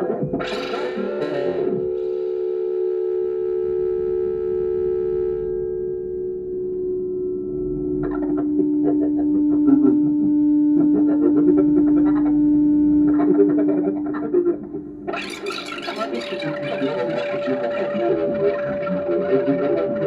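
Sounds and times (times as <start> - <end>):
held electronic tones: 0.0 - 20.0
stuttering synth fragments: 15.1 - 20.0.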